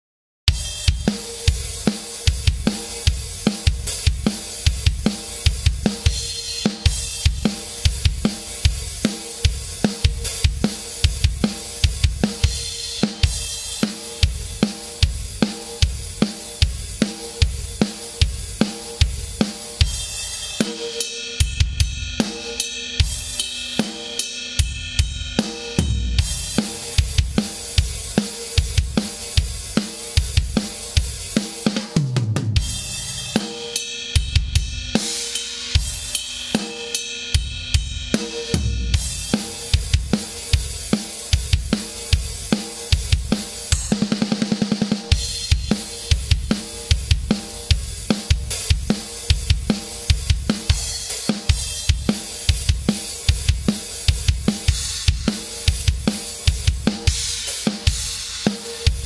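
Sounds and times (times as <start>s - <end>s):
rock drum kit beat: 0.5s - 59.0s.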